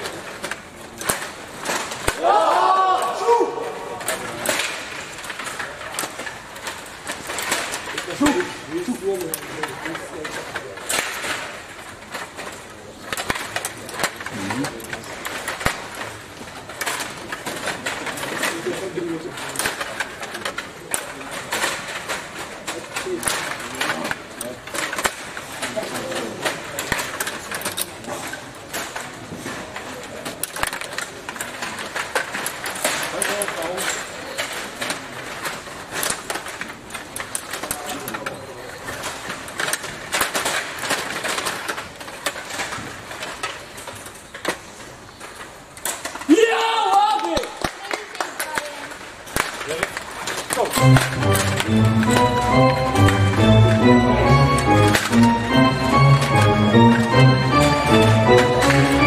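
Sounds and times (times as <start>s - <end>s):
figures knocking puck: 0.0s - 59.0s
murmur of voices: 0.0s - 59.0s
table hockey rods clicking: 0.0s - 59.0s.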